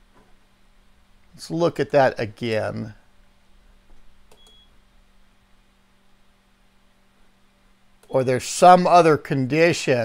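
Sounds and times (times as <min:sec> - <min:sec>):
high single-tone beep: 0:04.4 - 0:04.7.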